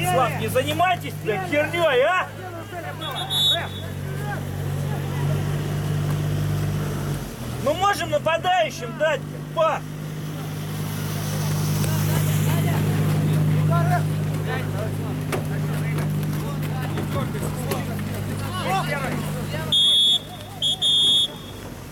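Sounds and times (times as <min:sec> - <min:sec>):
distant players shouting: 0:00.0 - 0:21.9
referee's whistle: 0:03.0 - 0:04.1, 0:19.7 - 0:21.7.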